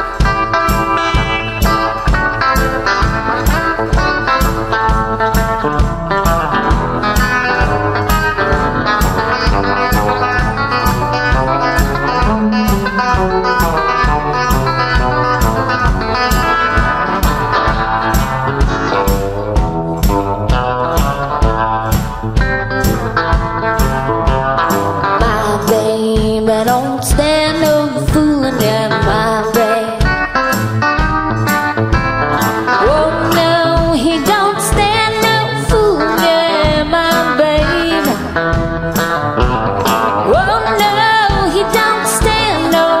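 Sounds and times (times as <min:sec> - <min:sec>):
steady beat: 0:00.0 - 0:27.4
electric guitar blues: 0:00.0 - 0:43.0.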